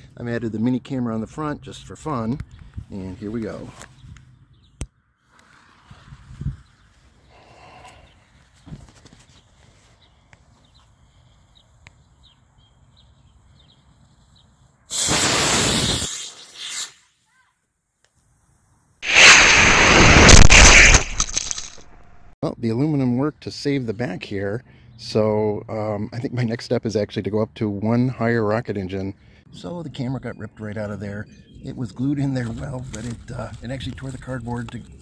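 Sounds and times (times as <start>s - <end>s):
rocket motor rushing hiss: 14.9s - 17.0s, 19.0s - 22.3s.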